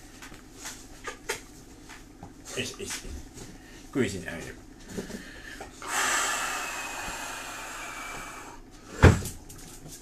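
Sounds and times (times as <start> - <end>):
breathy exhale: 5.1 - 9.0.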